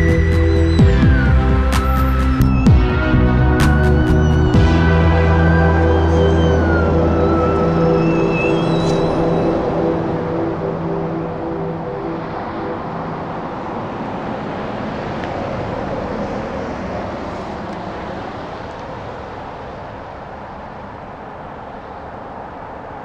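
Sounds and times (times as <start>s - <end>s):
held music notes: 0.0s - 17.6s
steady rushing noise: 0.0s - 23.0s.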